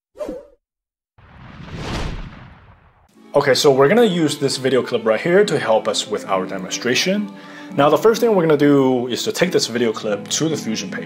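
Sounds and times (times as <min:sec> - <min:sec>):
whoosh: 0:01.2 - 0:03.1.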